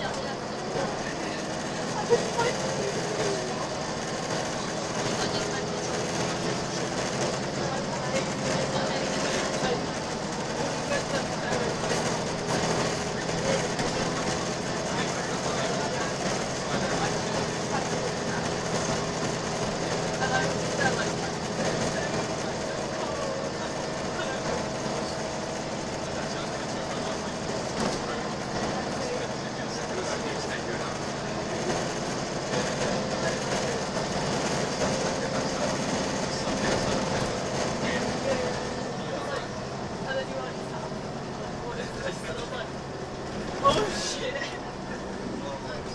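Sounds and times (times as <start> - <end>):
bus engine and road noise: 0.0 - 45.9.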